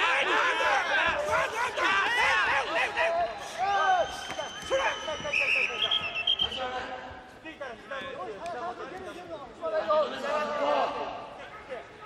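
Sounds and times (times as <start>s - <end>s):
people shouting: 0.0s - 6.0s
high-pitched whistle: 4.0s - 6.6s.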